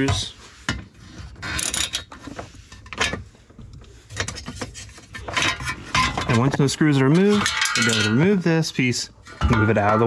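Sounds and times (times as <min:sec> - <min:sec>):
metal-on-metal clinks: 0:07.2 - 0:08.3.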